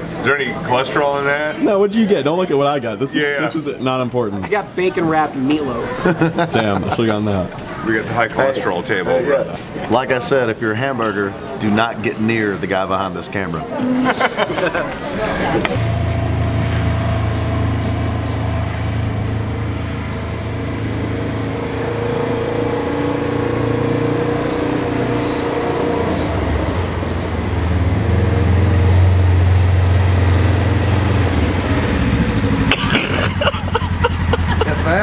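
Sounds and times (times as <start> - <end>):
utility vehicle engine droning: 15.4 - 35.0.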